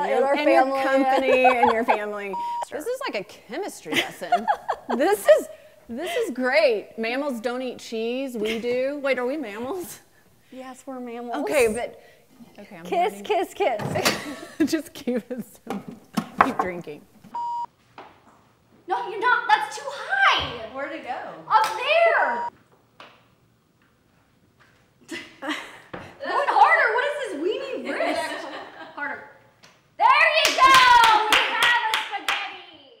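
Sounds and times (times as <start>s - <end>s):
person speaking: 0.0s - 6.4s
censor bleep: 2.3s - 2.7s, 17.4s - 17.7s
sharp hand claps: 30.4s - 32.6s.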